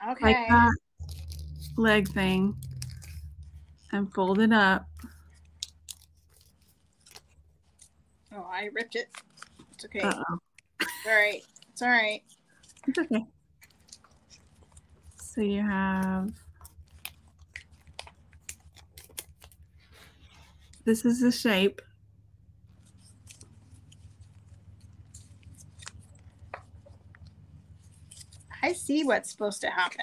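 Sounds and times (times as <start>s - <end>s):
paper crinkling as folded: 1.0s - 10.2s, 11.0s - 13.0s, 13.6s - 21.5s, 22.5s - 30.0s.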